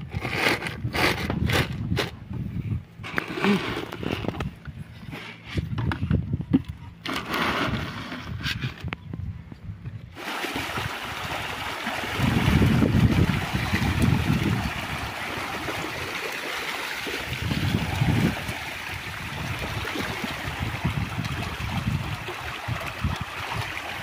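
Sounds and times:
feed sack and basin handling: 7.0s - 8.8s
fish thrashing and splashing: 10.2s - 24.0s.

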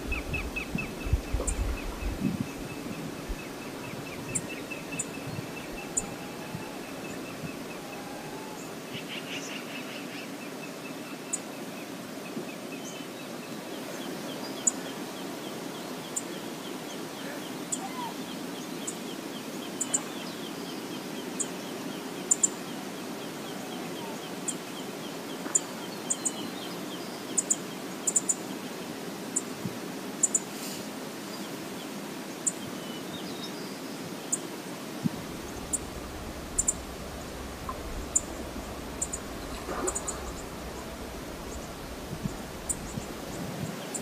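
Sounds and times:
river water rushing: 0.0s - 9.1s, 10.0s - 44.0s
low rumble: 35.0s - 43.7s
high bird chirps: 35.4s - 43.4s.

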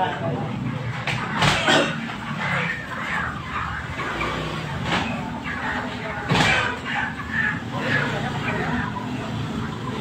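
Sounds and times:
chickens calling: 0.0s - 10.0s.

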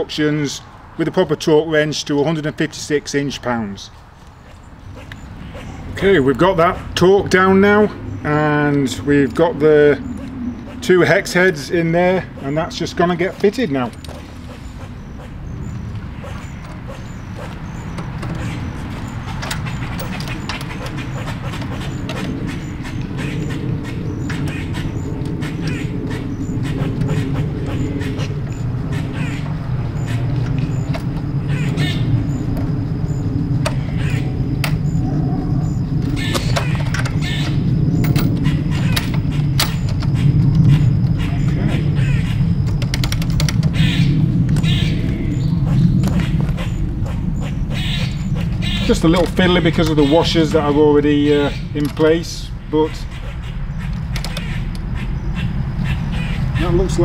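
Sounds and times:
steady low drone: 4.7s - 57.0s
hand tools clicking and tapping: 16.3s - 22.6s, 36.0s - 40.7s.

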